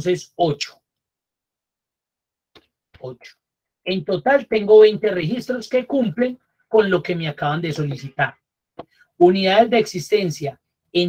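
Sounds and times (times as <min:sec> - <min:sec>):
man speaking: 0:00.0 - 0:00.8, 0:03.0 - 0:08.4, 0:09.2 - 0:11.0.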